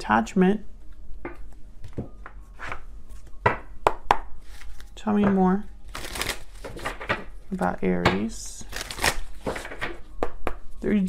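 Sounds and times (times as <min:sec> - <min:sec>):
cards being shuffled: 0:04.4 - 0:05.0, 0:05.9 - 0:07.3, 0:08.6 - 0:10.0.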